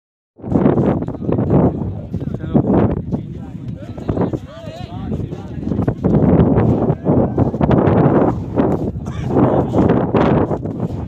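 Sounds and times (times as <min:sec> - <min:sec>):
wind buffeting microphone: 0:00.4 - 0:11.0.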